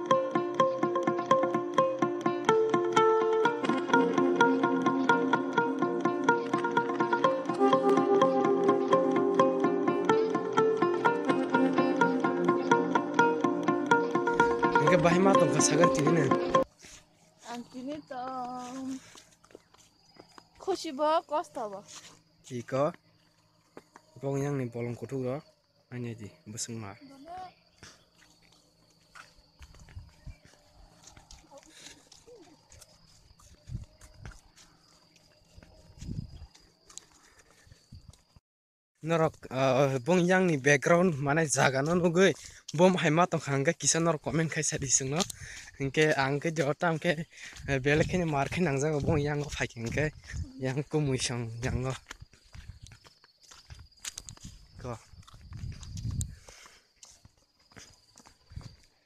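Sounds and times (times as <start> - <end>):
footsteps on dirt path: 12.8 - 24.2, 27.0 - 38.4, 40.5 - 43.5, 44.3 - 59.0.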